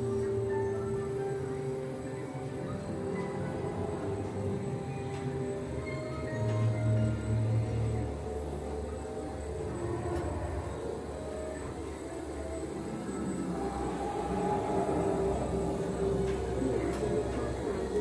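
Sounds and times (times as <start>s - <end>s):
atmospheric music: 0.0s - 18.0s.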